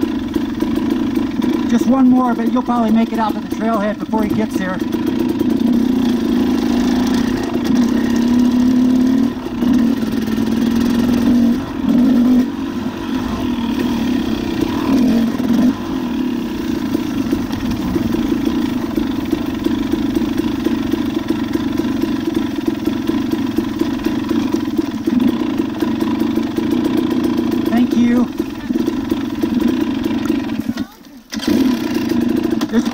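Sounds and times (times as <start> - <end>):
motorcycle engine at low revs: 0.0 - 32.9.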